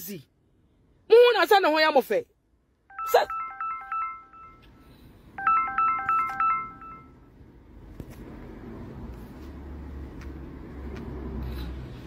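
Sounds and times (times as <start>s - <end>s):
phone ringtone melody: 2.9s - 4.7s, 5.4s - 7.2s.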